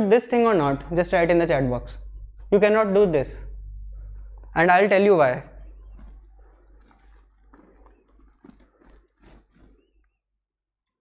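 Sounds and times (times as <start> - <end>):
low steady hum: 0.0 - 9.8.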